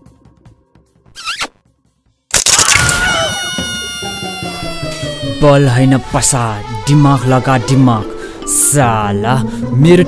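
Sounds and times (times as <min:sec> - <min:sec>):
trailer music with ticking beat: 0:00.0 - 0:02.9.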